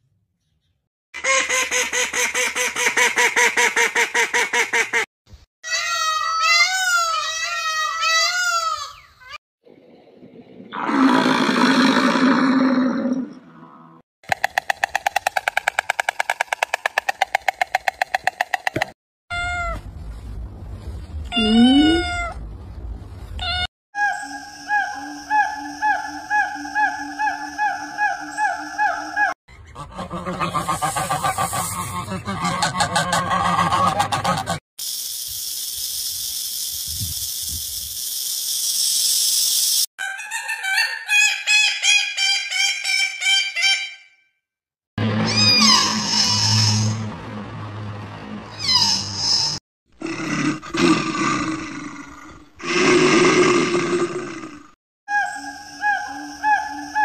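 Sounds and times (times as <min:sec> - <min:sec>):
peacock calling: 0:24.0 - 0:32.1, 0:45.2 - 0:47.0, 0:55.1 - 0:57.0
animal calls and noises: 0:24.0 - 0:34.6, 0:55.1 - 0:57.0.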